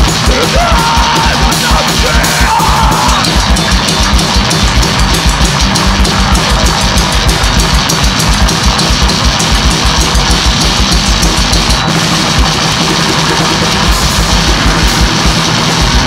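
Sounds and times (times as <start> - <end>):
bass guitar: 0.0 - 16.0
fast drum beat: 0.0 - 16.0
loud electric guitar: 0.0 - 16.0.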